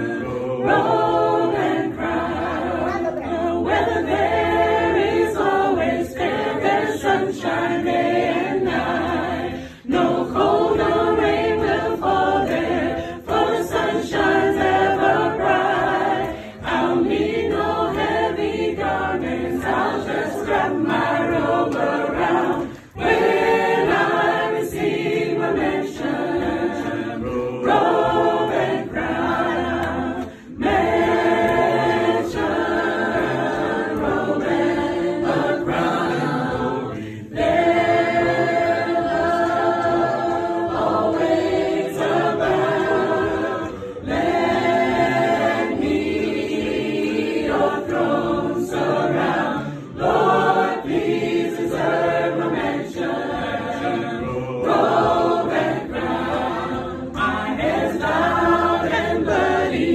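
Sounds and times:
group singing gospel unaccompanied: 0:00.0 - 0:59.9.

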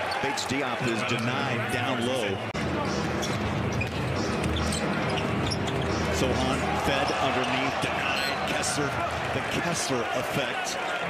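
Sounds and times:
crowd noise: 0:00.0 - 0:11.0
sneakers squeaking on hardwood: 0:03.2 - 0:06.3.

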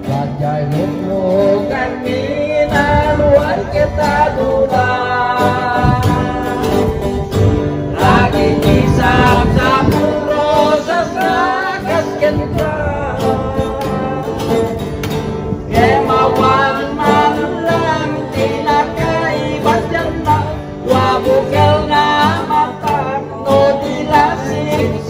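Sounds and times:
man singing into a microphone: 0:00.0 - 0:25.0
strummed acoustic guitars: 0:00.0 - 0:25.0.

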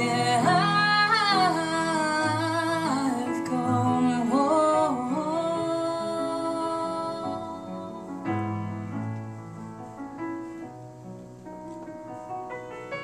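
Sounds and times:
grand piano playing: 0:00.0 - 0:13.0.

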